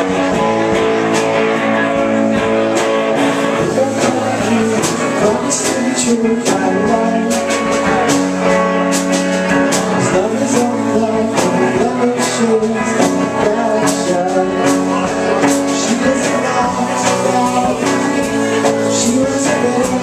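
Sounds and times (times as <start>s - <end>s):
electric guitar chords: 0.0s - 20.0s
steady drum beat: 0.0s - 20.0s.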